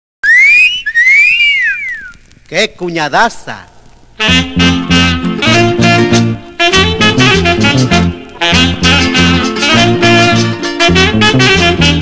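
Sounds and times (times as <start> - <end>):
wolf whistle: 0.2 - 2.3.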